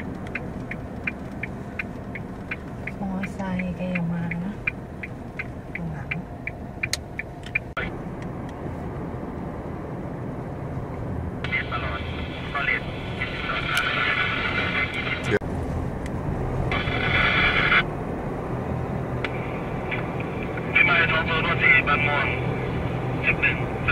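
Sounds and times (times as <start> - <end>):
light ticks: 0.0 - 8.6
road and engine noise in car: 0.0 - 23.9.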